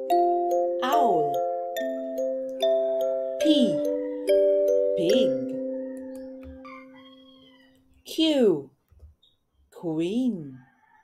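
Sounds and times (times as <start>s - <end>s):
voice saying a letter: 0.8s - 1.4s, 3.4s - 3.9s, 5.0s - 5.5s, 8.1s - 8.7s.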